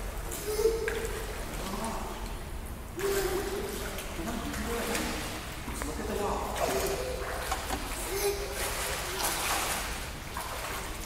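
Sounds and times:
child splashing in a pool: 0.2s - 2.4s, 3.0s - 11.0s.

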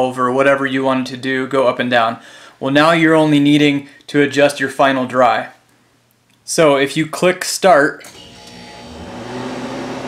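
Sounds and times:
freeze dryer machine hum: 8.1s - 10.0s
motor spinning up: 8.1s - 10.0s.

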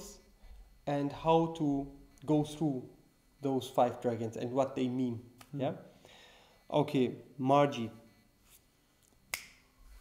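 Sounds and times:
sharp click: 9.3s - 9.6s.

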